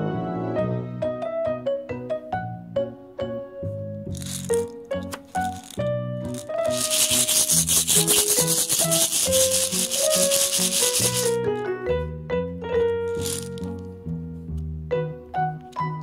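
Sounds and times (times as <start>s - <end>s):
light keyboard music: 0.0s - 16.0s
wrapper rustling and crinkling: 4.2s - 4.6s, 5.4s - 11.5s, 13.1s - 13.6s.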